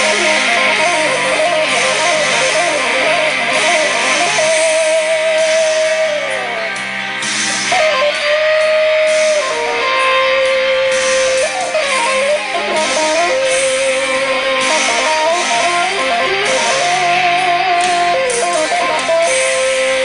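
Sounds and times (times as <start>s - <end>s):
electric guitar lead melody: 0.0s - 20.0s.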